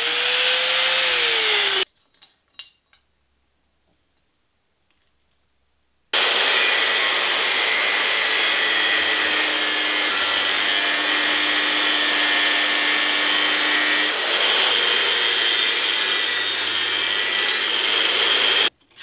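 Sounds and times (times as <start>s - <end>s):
cut-off wheel grinding steel: 0.0s - 1.9s, 6.2s - 18.7s.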